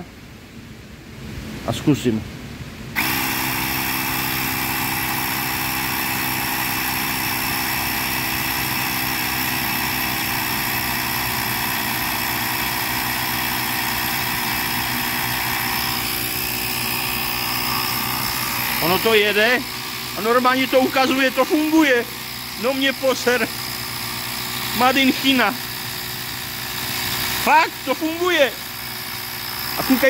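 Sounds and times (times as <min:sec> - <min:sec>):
electric tyre inflator running: 0:02.9 - 0:30.0.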